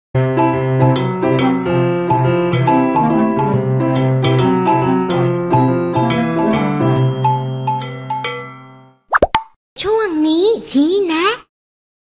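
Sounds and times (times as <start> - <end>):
cartoon jingle on bells: 2.6 - 9.0
sliding pop sound effect: 9.1 - 9.6.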